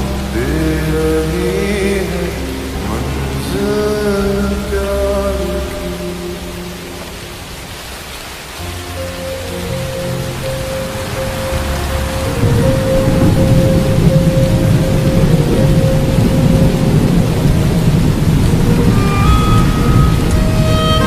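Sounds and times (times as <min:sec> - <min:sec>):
slowed reverb-heavy music: 0:00.0 - 0:21.0
steady rain: 0:00.0 - 0:21.0
thunder rumble: 0:00.0 - 0:21.0.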